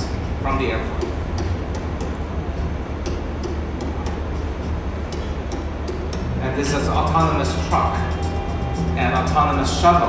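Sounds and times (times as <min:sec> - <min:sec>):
low rumble over loudspeakers: 0:00.0 - 0:10.0.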